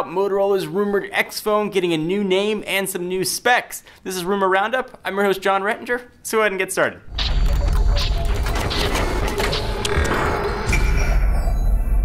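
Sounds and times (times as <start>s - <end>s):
mechanical clicks and ratcheting: 7.1s - 10.8s
music: 7.2s - 12.0s.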